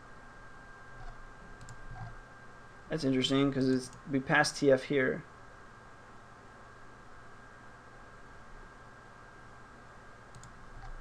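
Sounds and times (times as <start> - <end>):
faint high whine: 0.0 - 11.0
computer mouse clicks: 1.0 - 2.2, 3.7 - 4.1, 10.3 - 11.0.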